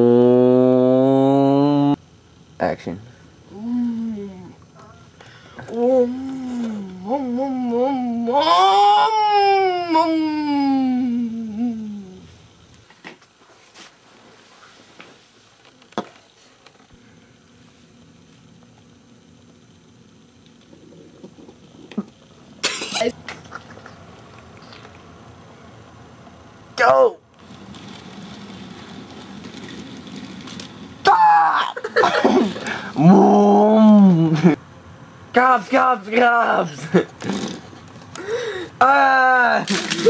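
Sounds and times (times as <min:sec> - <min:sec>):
short loud vocal sound: 0:00.0 - 0:02.0
voice imitating car engine: 0:00.0 - 0:02.0, 0:05.6 - 0:12.3.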